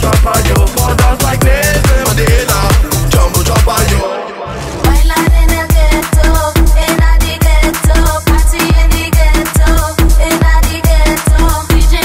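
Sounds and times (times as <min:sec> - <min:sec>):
kick drum beat: 0:00.0 - 0:04.0, 0:04.9 - 0:12.0.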